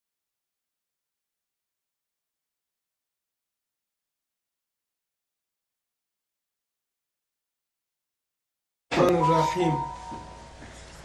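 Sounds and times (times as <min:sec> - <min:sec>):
man's voice: 0:08.9 - 0:10.0
room hum: 0:08.9 - 0:11.0
steady ringing tone: 0:09.0 - 0:10.9.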